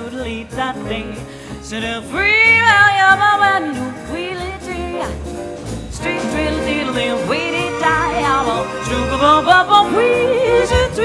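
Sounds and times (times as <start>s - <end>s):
jazz orchestra with strings: 0.0s - 11.0s.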